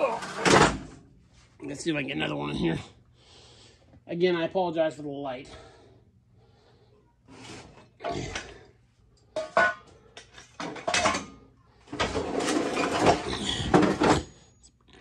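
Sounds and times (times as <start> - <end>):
metal bin scraping on concrete: 11.9 - 14.3.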